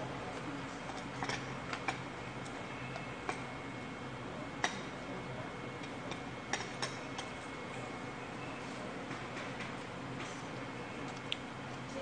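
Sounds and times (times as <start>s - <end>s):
low room hum: 0.0s - 12.0s.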